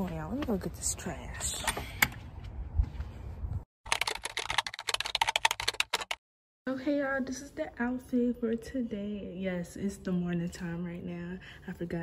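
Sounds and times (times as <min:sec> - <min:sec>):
rapid sharp clicks: 0:03.9 - 0:06.2.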